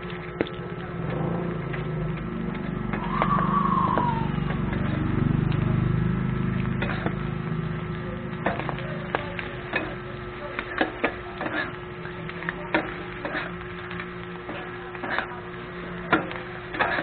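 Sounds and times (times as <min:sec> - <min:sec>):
low steady rumble: 0:00.0 - 0:17.0
brief rising and falling whine: 0:01.0 - 0:06.7
metal spatulas scraping on griddle: 0:06.8 - 0:07.2, 0:09.6 - 0:10.0, 0:10.6 - 0:11.8, 0:12.7 - 0:13.7, 0:14.4 - 0:15.4, 0:16.0 - 0:17.0.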